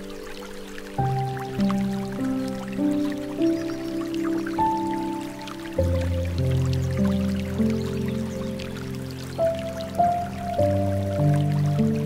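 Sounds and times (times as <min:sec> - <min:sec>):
slow soft piano music: 0:00.0 - 0:12.0
water trickling and dripping: 0:00.0 - 0:12.0.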